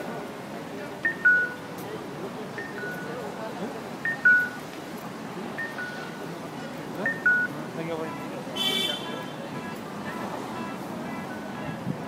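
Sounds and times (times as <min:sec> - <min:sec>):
people talking: 0:00.0 - 0:12.0
electronic two-tone chime: 0:01.1 - 0:01.6, 0:04.1 - 0:04.6, 0:05.6 - 0:06.1.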